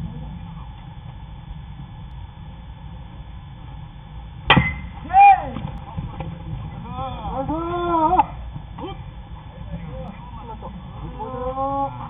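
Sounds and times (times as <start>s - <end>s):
baseball bat cracking ball: 4.5s - 6.3s
player shouting: 5.0s - 5.6s, 6.9s - 9.0s.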